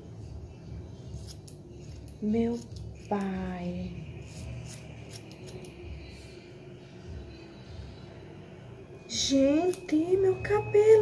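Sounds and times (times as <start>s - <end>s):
scissors snipping hair: 1.1s - 3.5s, 4.2s - 6.0s, 9.5s - 10.0s.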